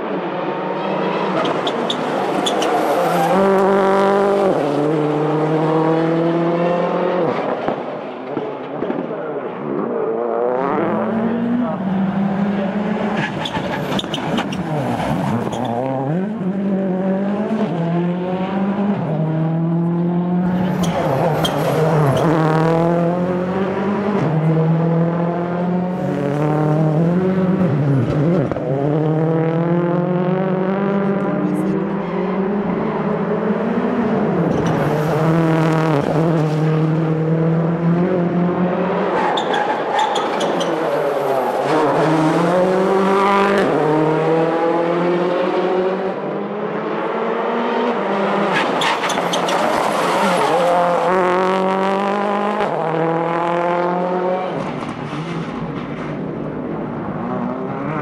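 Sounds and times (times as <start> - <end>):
racing car engine revving: 9.5 - 58.0.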